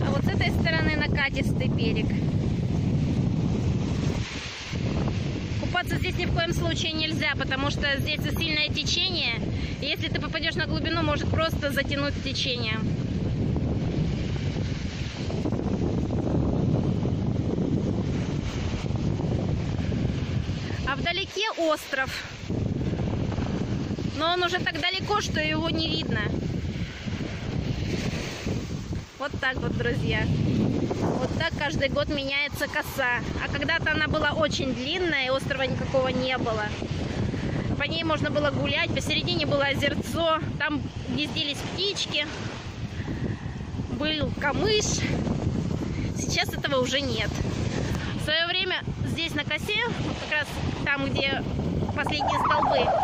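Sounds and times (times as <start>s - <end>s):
waves washing onto sand: 0.0s - 53.0s
wind buffeting microphone: 0.0s - 53.0s.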